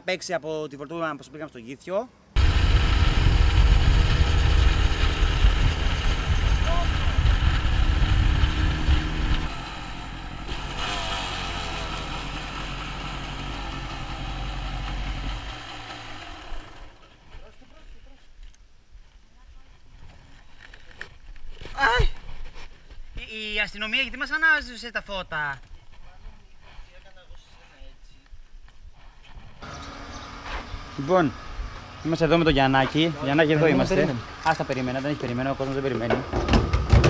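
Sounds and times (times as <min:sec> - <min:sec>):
dirt bike engine: 0:02.4 - 0:17.5, 0:29.6 - 0:37.0.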